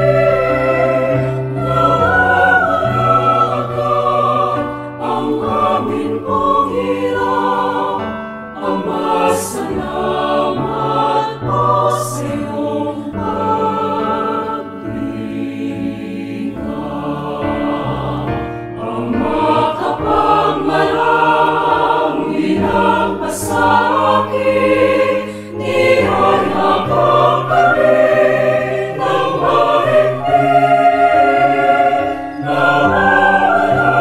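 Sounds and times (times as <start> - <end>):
mixed choir singing worship song: 0.0 - 34.0.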